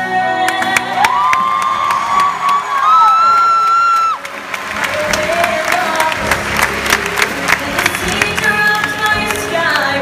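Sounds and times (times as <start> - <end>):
people clapping: 0.5 - 10.0
audience cheering: 0.9 - 7.0.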